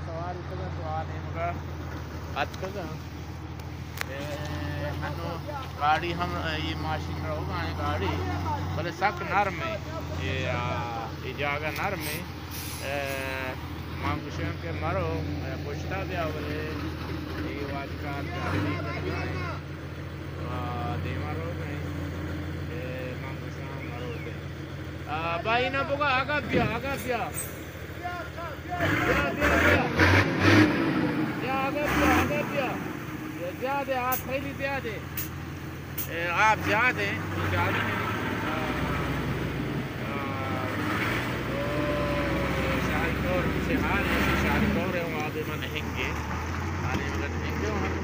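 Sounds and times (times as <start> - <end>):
diesel truck engine droning: 0.0 - 48.0
faint voices: 36.0 - 48.0.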